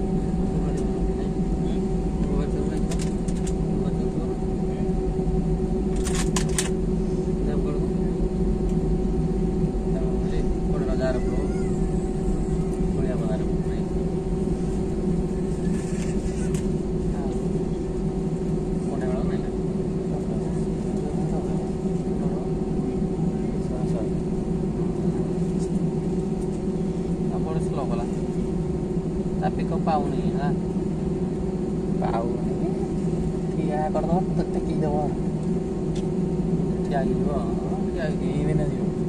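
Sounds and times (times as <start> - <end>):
faint passenger voices: 0.0 - 39.0
jet engines droning: 0.0 - 39.0.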